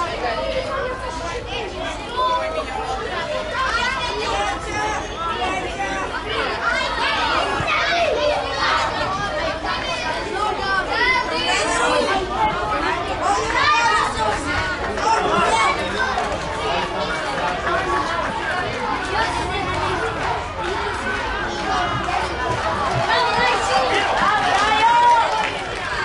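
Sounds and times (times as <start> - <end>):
children shouting and calling: 0.0 - 26.0.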